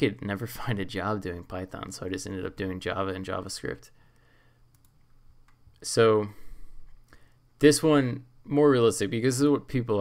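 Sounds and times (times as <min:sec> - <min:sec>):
person speaking: 0:00.0 - 0:04.0, 0:05.8 - 0:07.0, 0:07.6 - 0:10.0
computer mouse clicks: 0:04.7 - 0:05.7.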